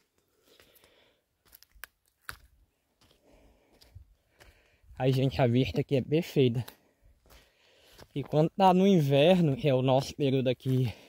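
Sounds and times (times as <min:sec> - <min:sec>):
footsteps on rocks and debris: 0:00.0 - 0:11.0
person panting: 0:00.3 - 0:01.2, 0:03.0 - 0:05.0, 0:06.8 - 0:08.1
clicks and crunches: 0:01.5 - 0:02.5.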